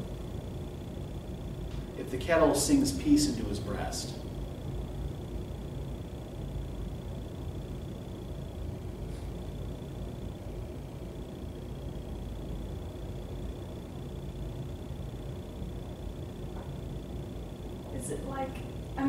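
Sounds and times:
faint high whine: 0.0s - 19.0s.

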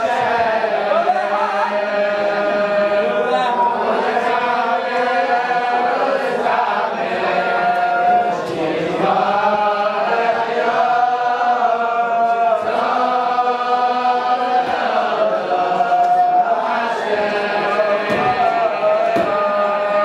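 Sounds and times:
boys singing in unison: 0.0s - 20.0s.

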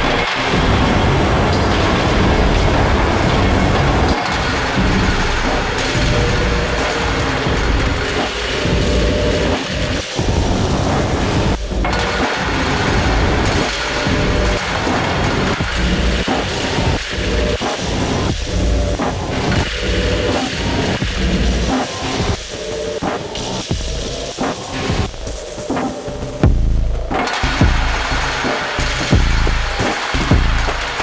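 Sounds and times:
distorted industrial noise music: 0.0s - 31.0s.

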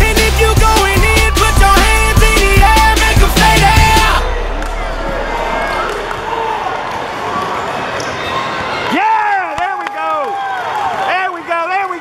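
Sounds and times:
din of spectators' voices: 3.4s - 12.0s.

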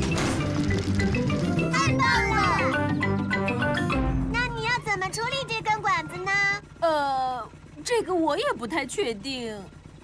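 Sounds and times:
light cartoon music: 0.0s - 6.8s.

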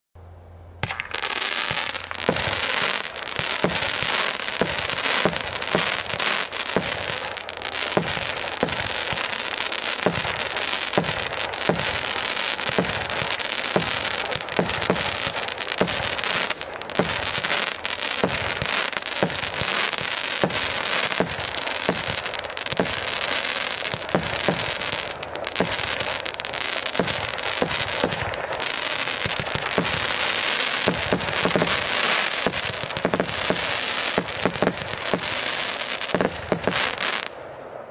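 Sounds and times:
fireworks crackling hiss: 0.8s - 37.9s
fireworks shots launching: 0.8s - 37.9s.

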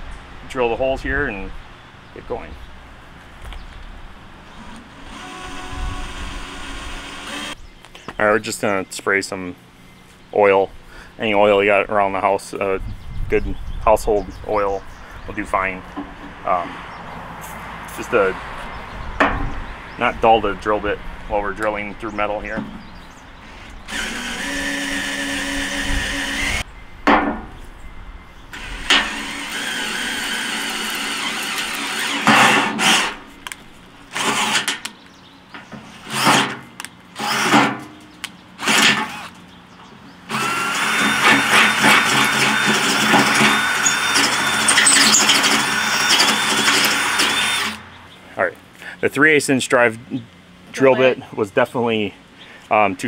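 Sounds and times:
drill boring into steel: 4.7s - 7.6s, 23.9s - 26.6s, 28.6s - 33.2s, 40.3s - 47.8s.

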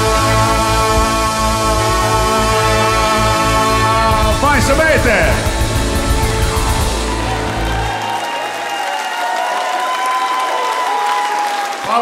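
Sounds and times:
rock band final chord: 0.0s - 8.5s
crowd applauding: 4.0s - 12.0s.

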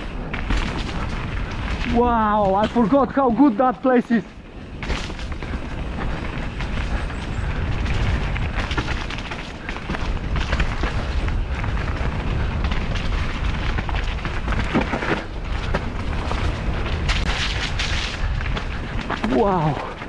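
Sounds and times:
bike rattling and knocking: 0.0s - 20.0s
tyres crunching over dirt: 0.0s - 20.0s
wind rumble on microphone: 0.0s - 20.0s.

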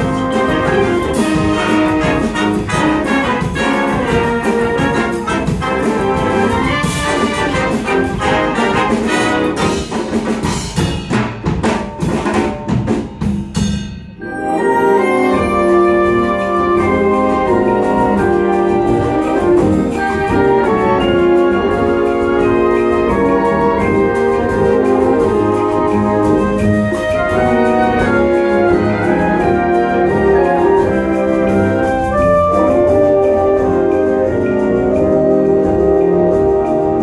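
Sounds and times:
wind band playing: 0.0s - 10.8s, 14.2s - 37.0s.

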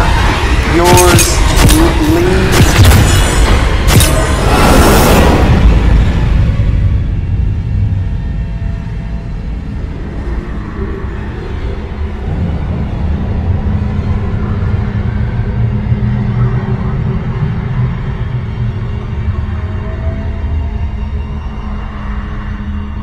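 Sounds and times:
suspenseful horror score drone: 0.0s - 23.0s.

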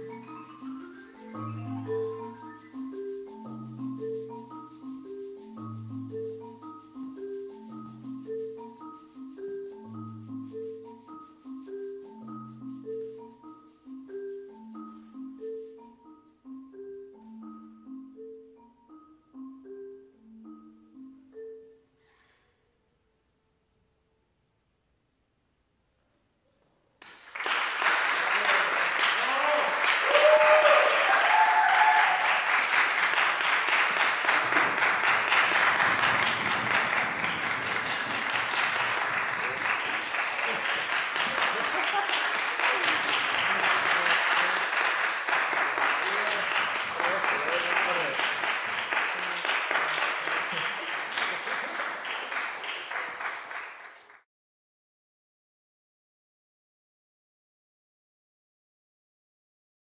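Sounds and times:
audience applauding: 27.0s - 54.2s.

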